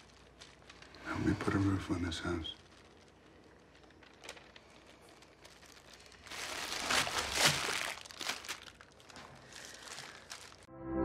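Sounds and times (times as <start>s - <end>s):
paper crinkling and rustling: 0.0s - 10.7s.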